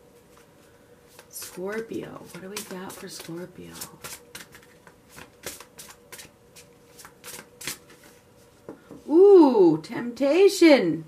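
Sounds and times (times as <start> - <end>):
cards being shuffled: 1.1 - 8.2.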